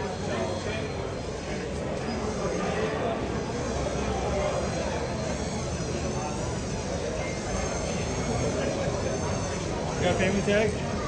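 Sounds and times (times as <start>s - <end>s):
murmur of onlookers: 0.0s - 11.0s.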